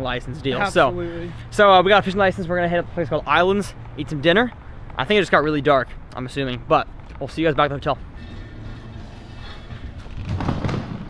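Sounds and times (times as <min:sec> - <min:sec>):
suitcase wheels rumbling on tiles: 0:08.6 - 0:11.0.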